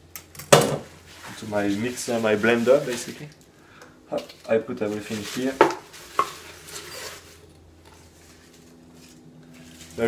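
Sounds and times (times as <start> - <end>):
faint steady hum: 0.0 - 10.0
leaves rustling: 1.0 - 3.3, 4.4 - 10.0.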